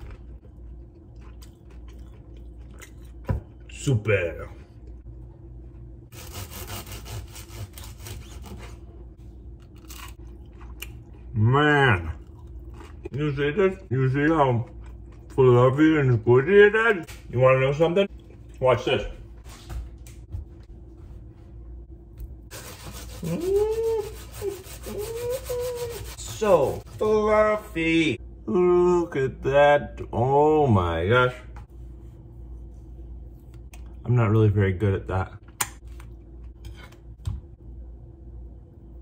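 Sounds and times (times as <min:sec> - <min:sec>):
low room hum: 0:00.0 - 0:39.0
knife sawing through bread: 0:06.1 - 0:08.8, 0:22.5 - 0:26.9.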